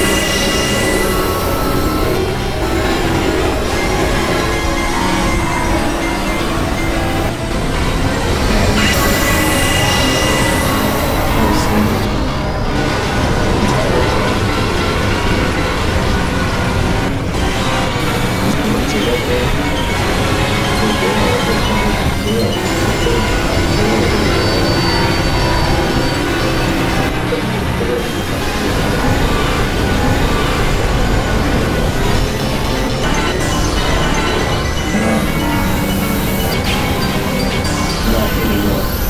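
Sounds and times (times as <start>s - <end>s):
synthesizer drones and tones: 0.0s - 39.0s.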